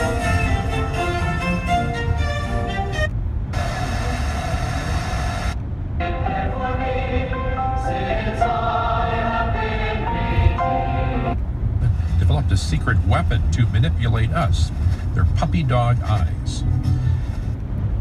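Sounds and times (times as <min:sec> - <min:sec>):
music on car radio: 0:00.0 - 0:17.6
radio hiss: 0:03.6 - 0:05.6.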